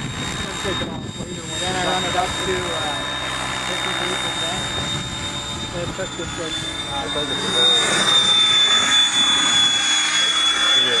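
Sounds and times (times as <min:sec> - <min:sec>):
electric motor whine: 0:00.0 - 0:11.0
helicopter rotor noise: 0:00.0 - 0:11.0.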